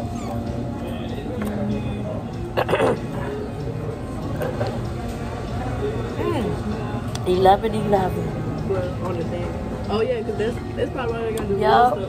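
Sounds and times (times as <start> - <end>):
music playing: 0.0 - 12.0
restaurant background noise: 0.0 - 12.0.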